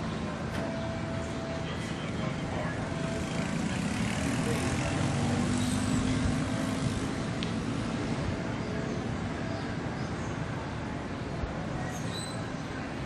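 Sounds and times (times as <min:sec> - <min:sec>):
vehicle engine running: 0:00.0 - 0:08.7
outdoor background noise: 0:00.0 - 0:13.0.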